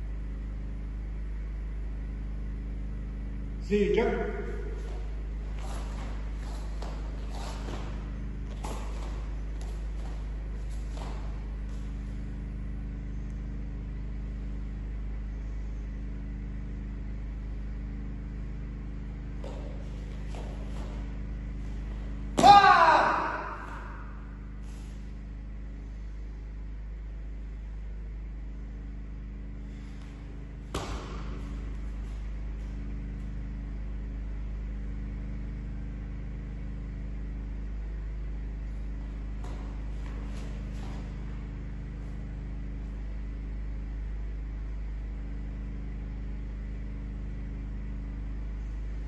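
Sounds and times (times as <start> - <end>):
low mechanical hum: 0.0 - 49.0.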